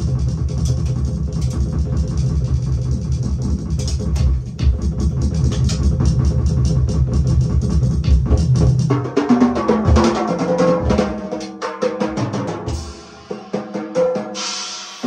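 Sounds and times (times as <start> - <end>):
drum solo on drum kit: 0.0 - 15.0.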